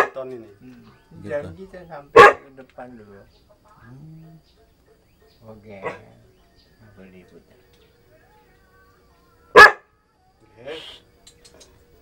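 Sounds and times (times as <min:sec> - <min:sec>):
dog barking: 0:02.1 - 0:02.6, 0:05.7 - 0:06.2, 0:09.5 - 0:09.9.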